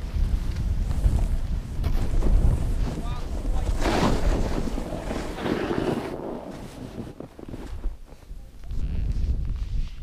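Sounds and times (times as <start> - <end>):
rush of sliding snow: 0.0 - 10.0
wind buffeting microphone: 0.0 - 10.0.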